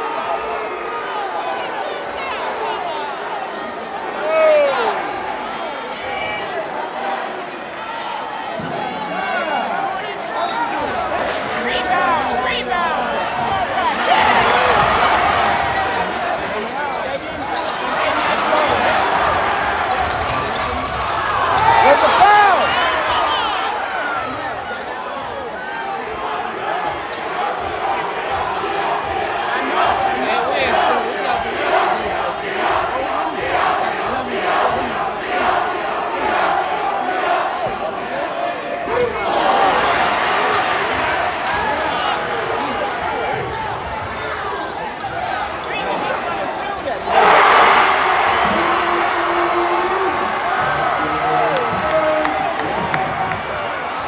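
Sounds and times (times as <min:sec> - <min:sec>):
crowd talking and shouting: 0:00.0 - 0:54.0.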